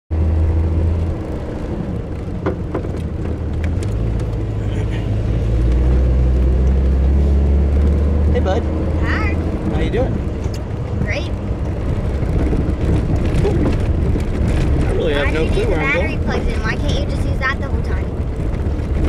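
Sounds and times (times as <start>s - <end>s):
vehicle engine and tyre drone: 0.1s - 19.0s.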